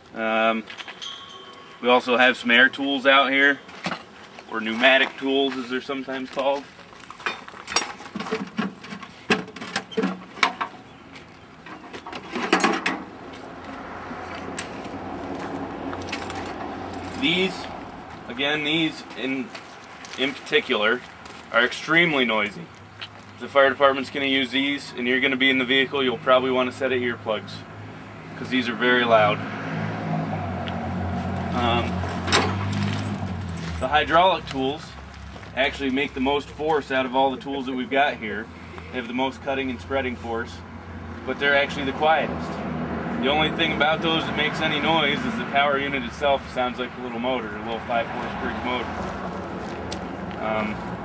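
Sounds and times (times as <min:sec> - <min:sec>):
metal tools clanking in toolbox: 0:00.8 - 0:02.0
man speaking: 0:01.8 - 0:03.7, 0:04.5 - 0:06.7, 0:17.2 - 0:19.5, 0:20.2 - 0:22.7, 0:23.4 - 0:27.7, 0:28.4 - 0:29.4, 0:31.6 - 0:32.0, 0:33.8 - 0:35.0, 0:35.6 - 0:42.5, 0:43.2 - 0:48.9, 0:50.4 - 0:50.8.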